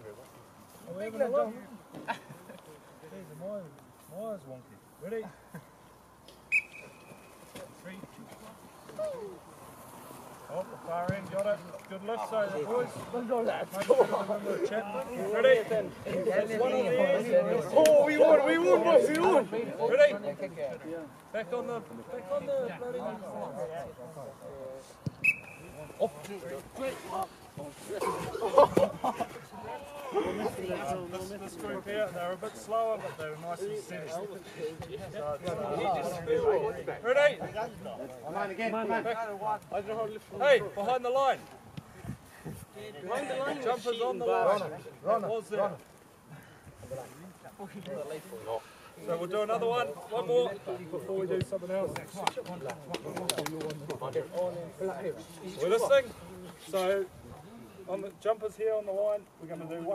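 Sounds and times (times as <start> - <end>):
whistle blast: 6.5 - 7.3, 25.2 - 25.8
young voices chattering: 12.0 - 24.8, 25.8 - 34.8.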